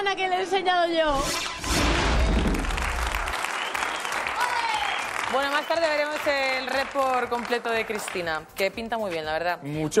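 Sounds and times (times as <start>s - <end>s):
audience applause: 2.2s - 8.2s.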